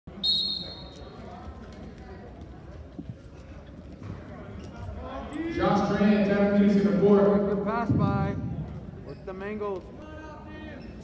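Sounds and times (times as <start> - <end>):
faint voices in echoing gym: 0.1 - 11.0
high whistle blast: 0.2 - 0.9.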